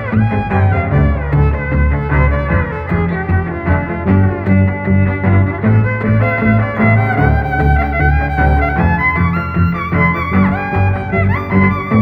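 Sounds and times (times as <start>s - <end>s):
bowed violin melody: 0.0s - 12.0s
pulsing low accompaniment: 0.0s - 12.0s.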